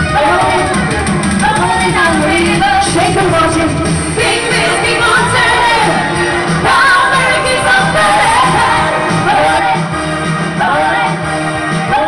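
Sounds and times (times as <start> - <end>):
woman singing into a microphone: 0.0 - 9.9, 10.6 - 11.2
up-tempo backing music: 0.0 - 12.0.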